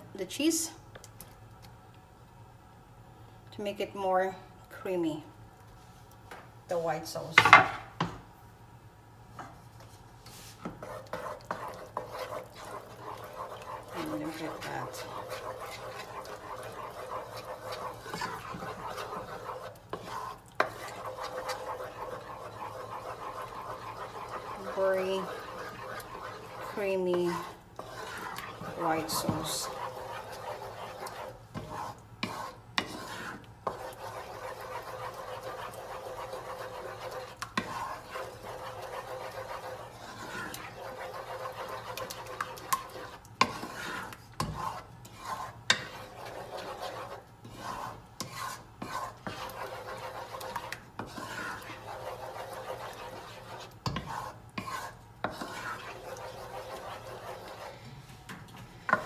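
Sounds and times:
wooden spoon scraping saucepan: 9.8s - 59.0s.

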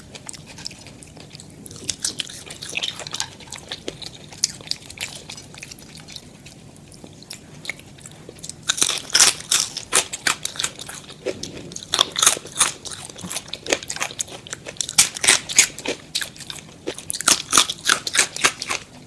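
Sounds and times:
crunchy chewing of fries: 0.0s - 19.0s.

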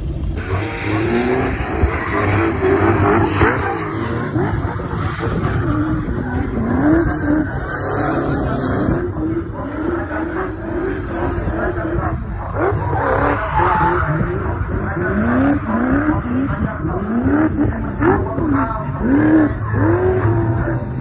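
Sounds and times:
car engine revving: 0.0s - 21.0s
tyres spinning and skidding: 0.8s - 17.8s.

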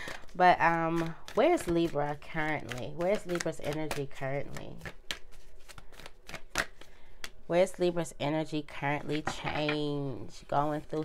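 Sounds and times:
cards being shuffled: 0.0s - 7.4s.

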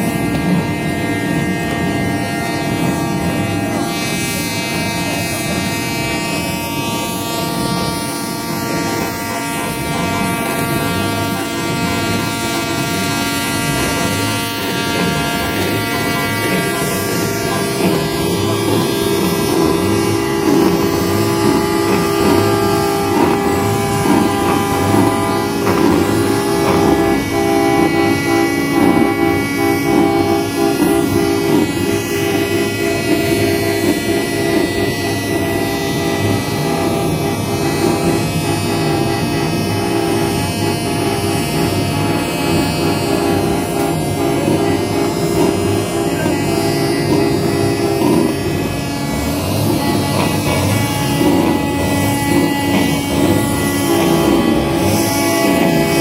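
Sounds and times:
truck horns blaring: 0.0s - 56.0s.

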